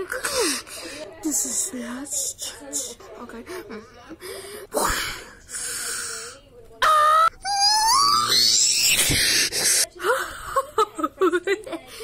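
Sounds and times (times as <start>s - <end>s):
cartoon voices from a tv: 0.0s - 12.0s
high-pitched wailing cry: 6.8s - 9.2s.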